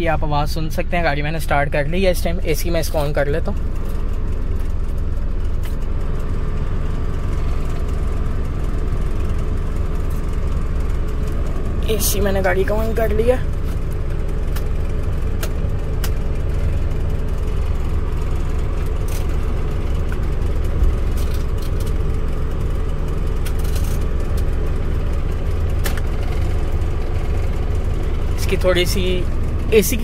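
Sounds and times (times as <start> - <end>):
air conditioning blower fan: 0.0 - 30.0
car engine idling: 0.0 - 30.0.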